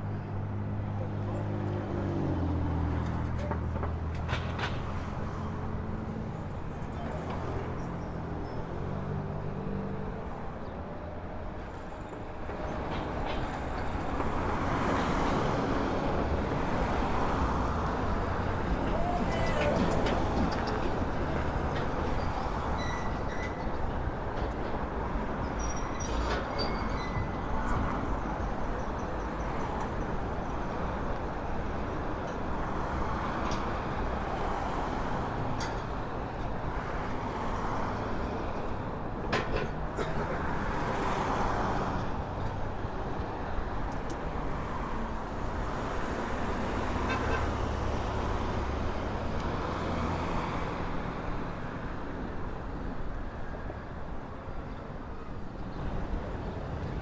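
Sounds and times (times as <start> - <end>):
road traffic rumble: 0.0 - 57.0.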